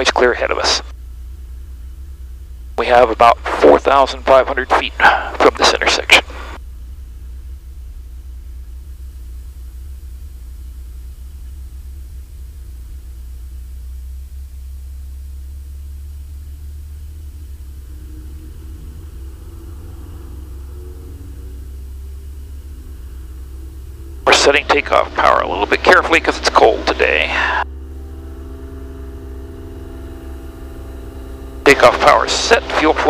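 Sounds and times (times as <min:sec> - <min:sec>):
piston aircraft engine droning: 0:00.0 - 0:33.0.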